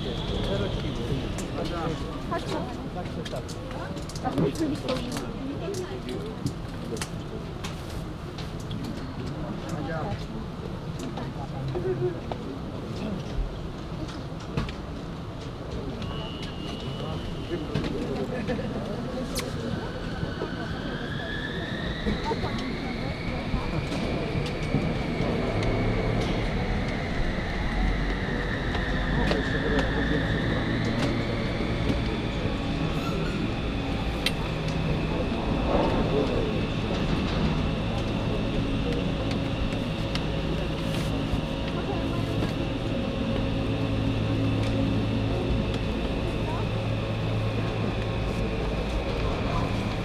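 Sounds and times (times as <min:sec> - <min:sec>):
faint voices: 0:00.0 - 0:50.0
vehicle engine rumble and whine: 0:00.0 - 0:50.0
low hum: 0:21.8 - 0:50.0.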